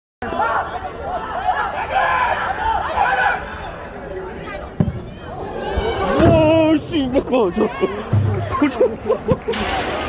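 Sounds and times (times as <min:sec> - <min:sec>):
indistinct spectator chatter: 0:00.7 - 0:10.0.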